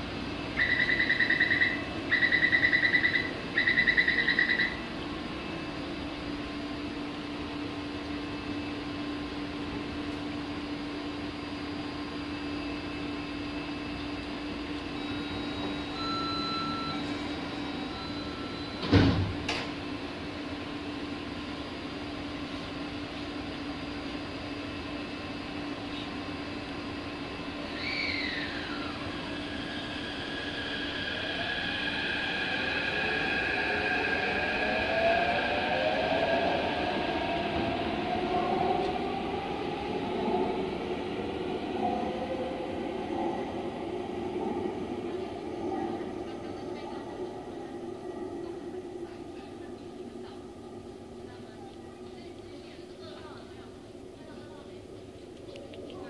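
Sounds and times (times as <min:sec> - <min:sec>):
rail noise: 0:00.0 - 0:56.0
warning beep: 0:00.6 - 0:04.8, 0:15.0 - 0:18.8
train doors thumping shut: 0:18.8 - 0:19.8.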